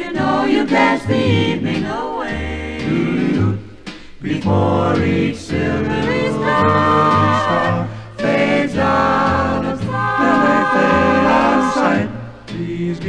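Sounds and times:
choir singing in close harmony: 0:00.0 - 0:13.0.

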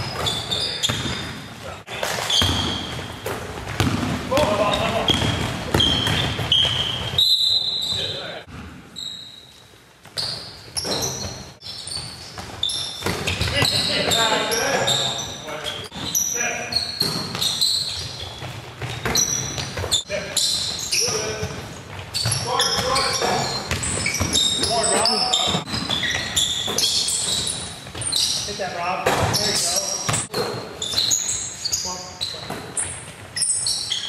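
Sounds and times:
shoe squeaks: 0:00.0 - 0:34.0
basketball bouncing on hardwood: 0:02.3 - 0:07.2, 0:17.0 - 0:20.0
players calling out: 0:04.2 - 0:08.4, 0:22.2 - 0:30.3.

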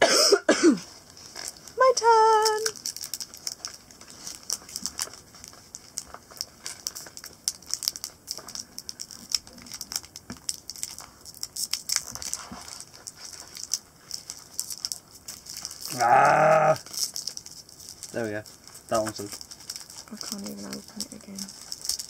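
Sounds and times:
foil packet crinkling: 0:00.8 - 0:22.0.

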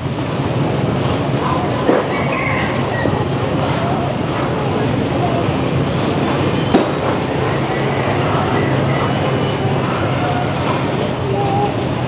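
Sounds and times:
faint distant voices: 0:00.7 - 0:12.0.

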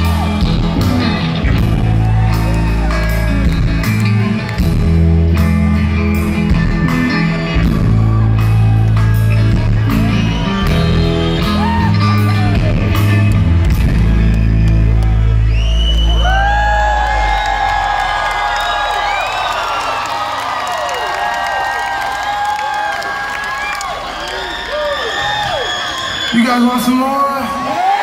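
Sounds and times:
rock band playing live: 0:00.0 - 0:18.5
crowd cheering and whooping: 0:00.0 - 0:28.0.

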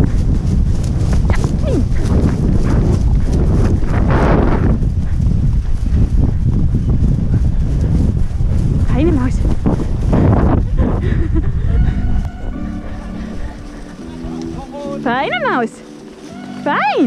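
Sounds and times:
horses cantering on grass: 0:00.0 - 0:17.0
wind rumble on microphone: 0:00.0 - 0:17.0.

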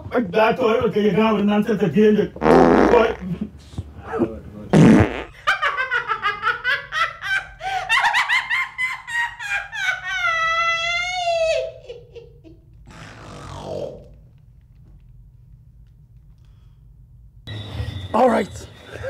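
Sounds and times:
woman laughing hard: 0:05.4 - 0:12.6.

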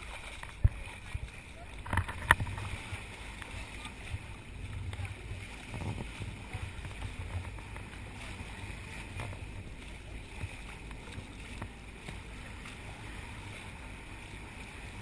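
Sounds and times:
faint water splashes: 0:00.0 - 0:15.0
sea rushing along boat bow: 0:00.0 - 0:15.0
wind rumble on microphone: 0:00.0 - 0:15.0.

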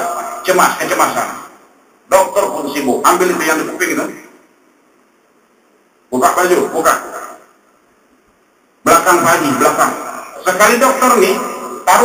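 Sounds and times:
man speaking: 0:00.0 - 0:04.4, 0:06.1 - 0:07.5, 0:08.8 - 0:12.0.

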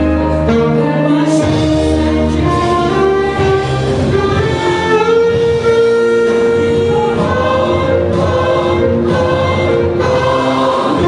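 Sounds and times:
alto saxophone slow melody: 0:00.0 - 0:11.0.

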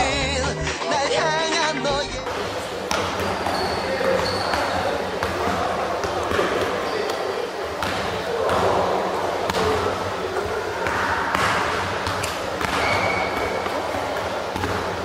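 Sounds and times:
people talking: 0:00.0 - 0:15.0
basketballs bouncing on hardwood floor: 0:02.2 - 0:07.2, 0:10.8 - 0:15.0.

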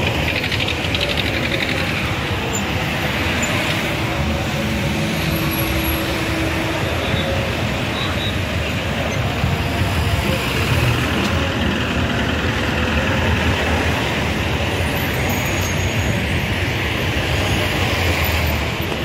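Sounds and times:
street traffic noise: 0:00.0 - 0:19.0.

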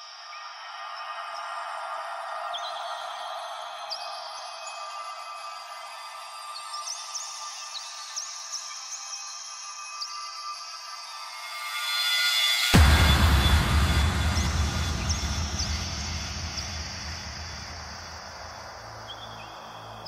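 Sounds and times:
filtered synth wash: 0:11.3 - 0:18.8.

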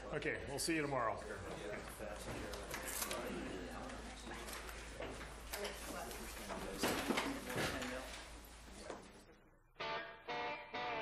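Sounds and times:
faint muffled voices: 0:01.0 - 0:09.7.

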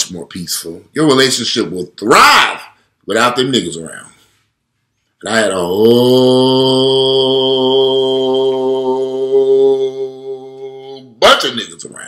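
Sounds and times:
man chanting long low vowel: 0:05.3 - 0:11.2.

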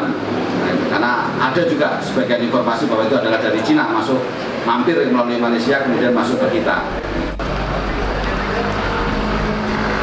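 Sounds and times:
low outdoor rumble: 0:04.9 - 0:10.0.

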